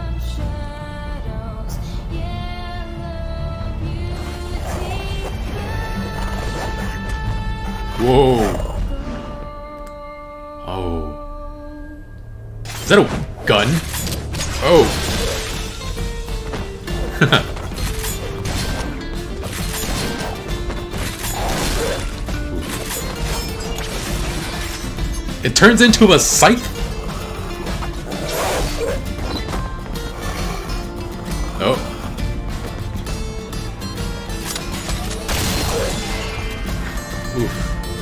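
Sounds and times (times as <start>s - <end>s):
fight scene music: 0.0s - 10.2s, 12.6s - 38.0s.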